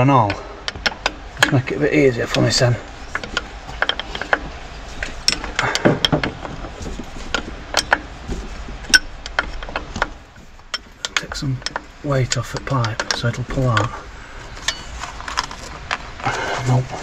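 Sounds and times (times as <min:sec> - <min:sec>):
spanner knocking on metal: 0:00.0 - 0:14.9
ratchet clicks: 0:10.7 - 0:14.0.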